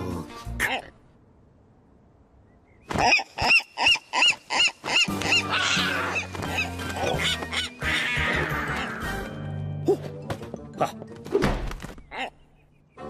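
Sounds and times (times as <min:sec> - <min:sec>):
music: 0:00.0 - 0:00.6, 0:05.1 - 0:12.0, 0:12.8 - 0:13.0
cartoon seagull squawking: 0:02.9 - 0:09.0.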